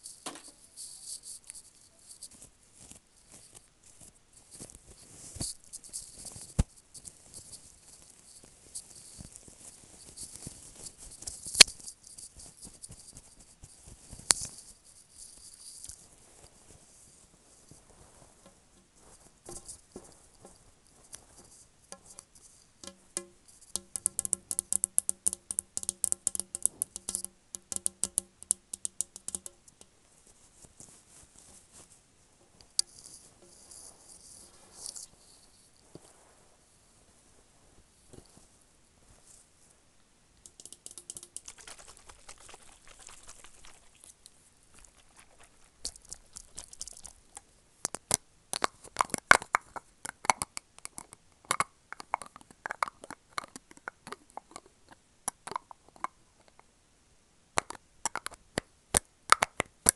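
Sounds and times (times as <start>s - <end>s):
fabric rustling near microphone: 0.0s - 22.8s, 30.0s - 39.8s, 41.4s - 46.9s
fingernails tapping plastic bowl: 22.8s - 29.6s.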